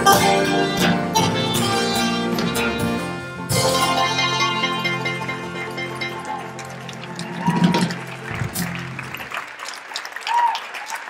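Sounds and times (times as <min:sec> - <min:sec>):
live band final chord: 0:00.0 - 0:09.3
audience clapping and cheering: 0:06.1 - 0:11.0.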